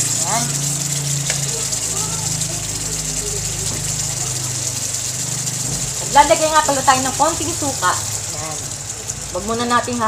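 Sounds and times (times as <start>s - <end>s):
induction cooktop hum: 0.0s - 10.0s
liquid simmering hiss: 0.0s - 10.0s.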